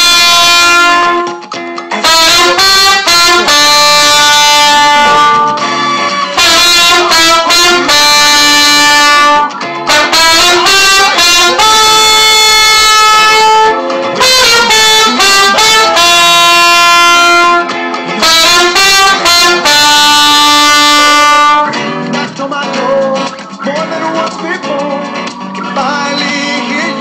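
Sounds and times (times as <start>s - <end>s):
trumpet holding long note: 0.0s - 1.4s, 2.0s - 21.8s
backing track: 0.0s - 27.0s.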